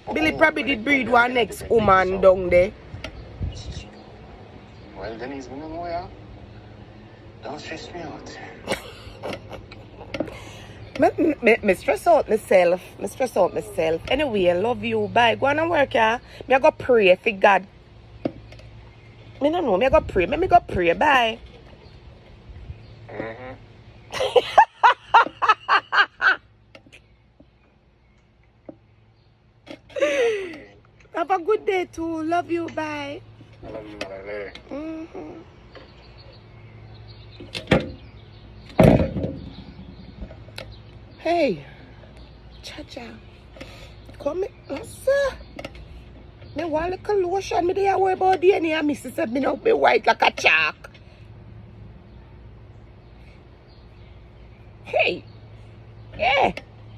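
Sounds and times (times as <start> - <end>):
woman laughing: 8.6 - 10.6, 24.1 - 26.4, 29.9 - 30.8.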